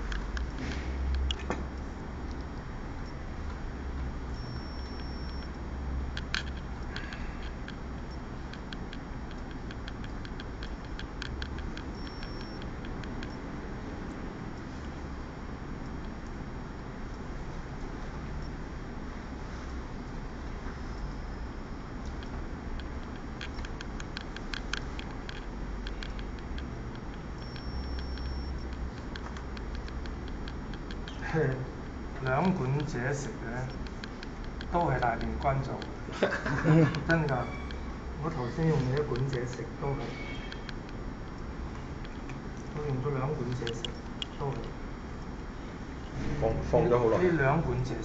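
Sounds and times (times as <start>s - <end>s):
steady low hum: 0.0s - 48.0s
faint high whine: 4.2s - 6.0s, 6.6s - 13.5s, 19.6s - 23.8s, 25.2s - 40.9s
light uneven clicking: 4.4s - 13.4s, 22.0s - 45.3s.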